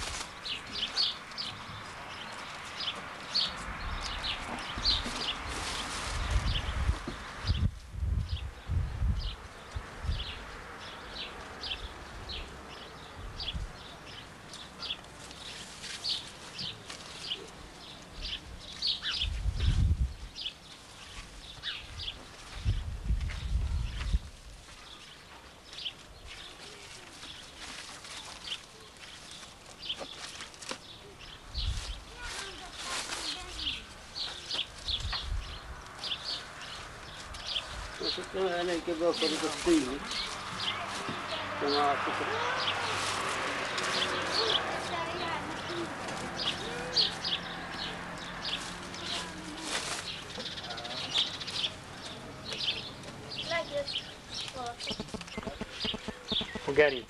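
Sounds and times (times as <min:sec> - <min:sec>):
small birds chirping: 0:00.0 - 0:57.0.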